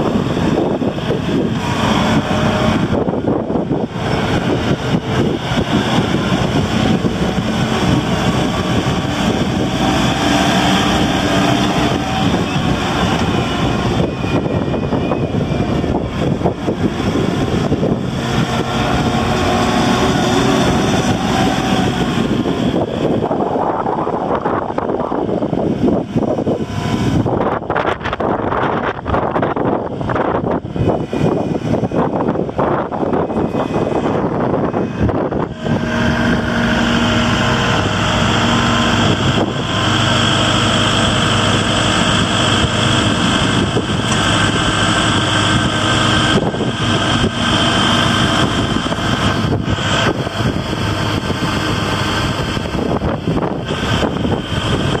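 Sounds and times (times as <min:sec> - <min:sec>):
gusty wind on microphone: 0:00.0 - 0:55.0
tractor diesel engine running: 0:00.0 - 0:55.0.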